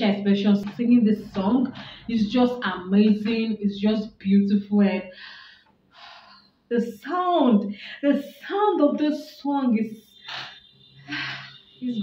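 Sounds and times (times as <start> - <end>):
woman speaking: 0.0 - 5.3, 6.7 - 12.0
woman breathing: 1.7 - 2.1, 5.1 - 6.6, 10.3 - 11.7.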